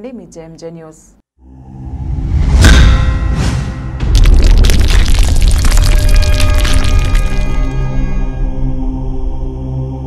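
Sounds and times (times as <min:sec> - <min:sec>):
dense crackling hits: 0:03.9 - 0:08.1
deep bass boom: 0:04.0 - 0:07.9.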